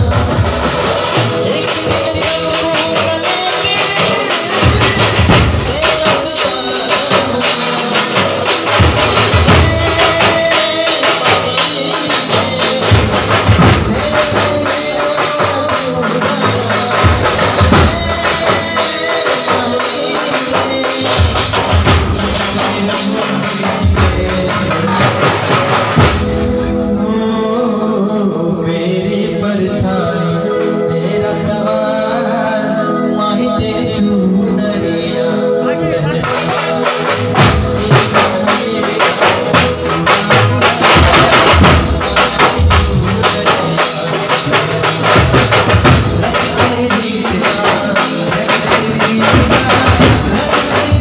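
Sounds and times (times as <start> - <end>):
drums keeping steady beat: 0.0 - 51.0
loud band music: 0.0 - 51.0.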